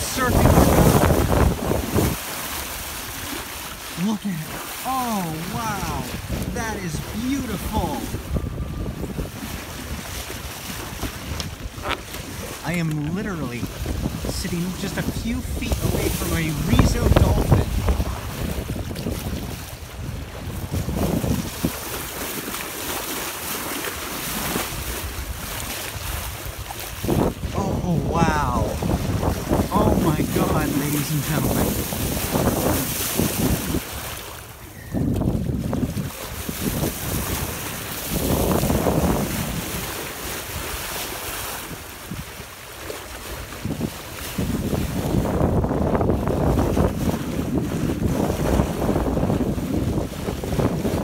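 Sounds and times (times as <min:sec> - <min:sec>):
wind on microphone: 0:00.0 - 0:22.6, 0:23.5 - 0:51.0
water rushing along boat bow: 0:00.0 - 0:51.0.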